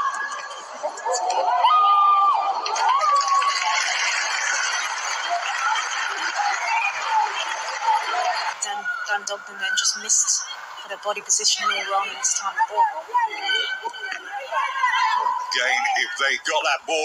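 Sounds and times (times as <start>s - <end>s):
players shouting: 0.0s - 17.0s.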